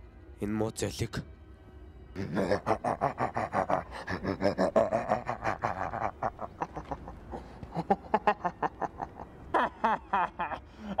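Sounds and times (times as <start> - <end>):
person cackling: 2.2 - 11.0.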